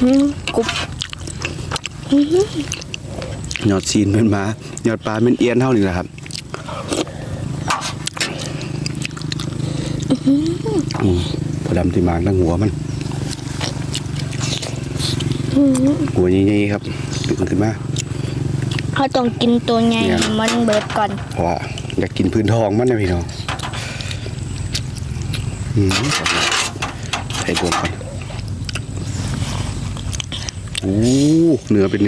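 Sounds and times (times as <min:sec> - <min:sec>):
low buzzing drone: 0:00.0 - 0:32.0
person humming: 0:02.1 - 0:02.7, 0:10.1 - 0:11.4, 0:15.5 - 0:16.1.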